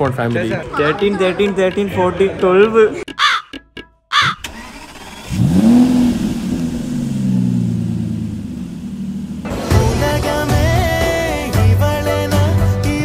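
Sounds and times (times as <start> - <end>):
car engine from inside cabin: 4.9 - 9.7.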